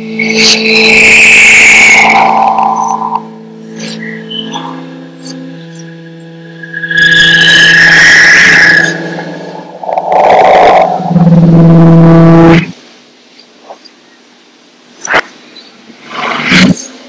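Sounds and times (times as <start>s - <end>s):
steady electronic drone: 0.0s - 12.8s
harsh distorted blasts: 6.4s - 12.7s.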